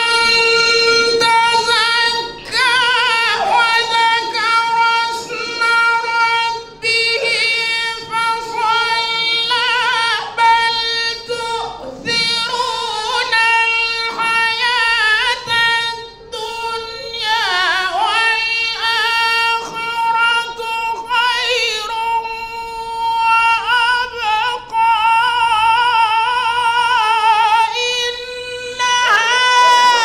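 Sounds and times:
man chanting melodically: 0:00.0 - 0:30.0.

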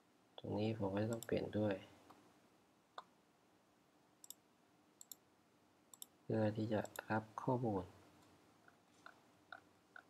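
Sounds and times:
man speaking: 0:00.4 - 0:02.0, 0:06.3 - 0:08.0.

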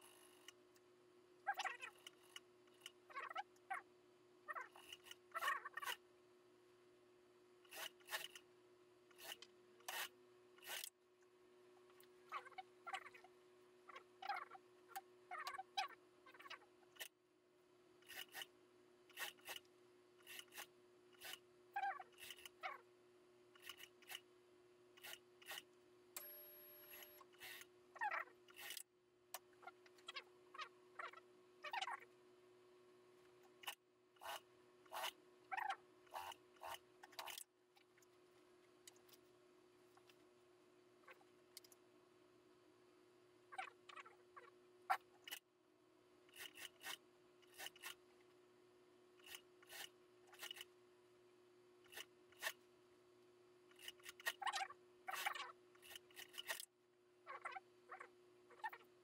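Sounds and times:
faint steady hum: 0:00.0 - 0:59.0.

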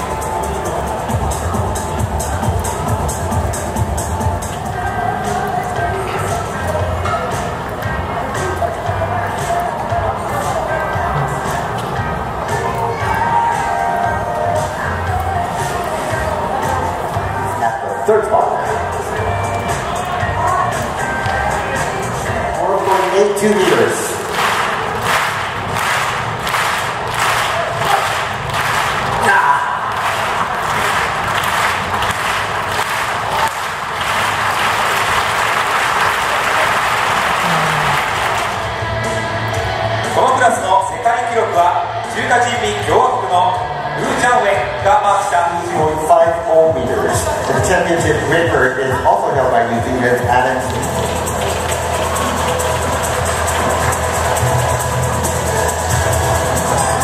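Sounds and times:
spectators clapping in rhythm: 0:00.0 - 0:17.5, 0:18.6 - 0:40.2, 0:50.0 - 0:57.0
electronic music over loudspeakers: 0:00.0 - 0:57.0
stadium crowd noise: 0:00.0 - 0:57.0.

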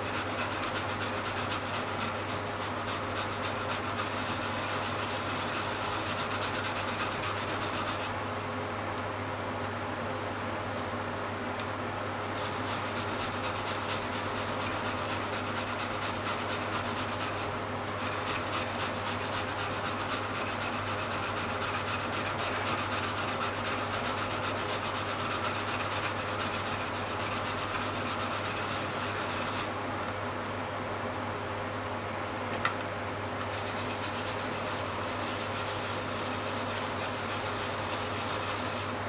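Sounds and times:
yam grated on plastic grater: 0:00.0 - 0:08.1, 0:12.2 - 0:29.8, 0:33.4 - 0:39.0.

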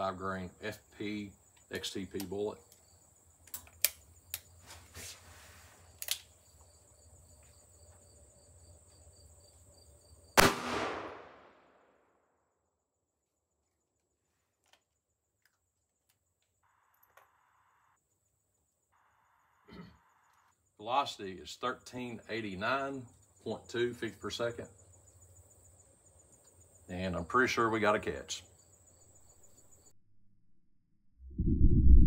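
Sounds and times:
revolver handling clicks: 0:03.4 - 0:04.5, 0:06.0 - 0:06.3
revolver gunshot with echo: 0:10.4 - 0:11.7.

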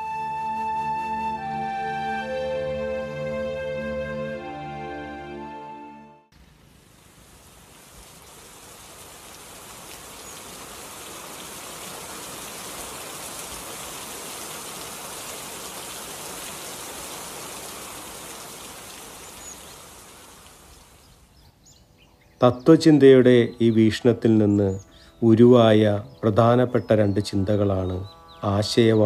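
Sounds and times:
rain hissing: 0:06.3 - 0:21.4.

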